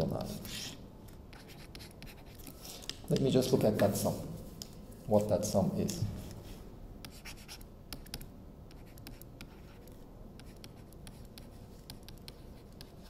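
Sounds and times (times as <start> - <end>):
stylus scratching on tablet: 0.0 - 2.7, 6.2 - 13.0.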